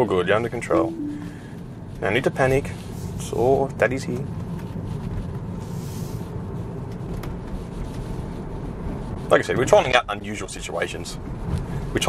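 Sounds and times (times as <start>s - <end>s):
road and tyre rumble in car: 1.8s - 12.0s.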